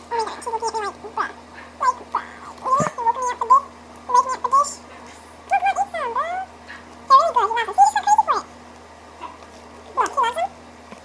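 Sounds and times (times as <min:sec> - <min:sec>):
high-pitched vocal sounds: 0:00.0 - 0:08.5.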